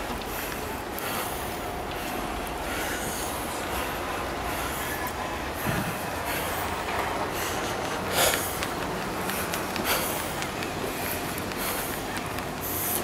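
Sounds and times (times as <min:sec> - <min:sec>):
traffic rumble: 0:00.0 - 0:13.0
wind: 0:00.0 - 0:13.0.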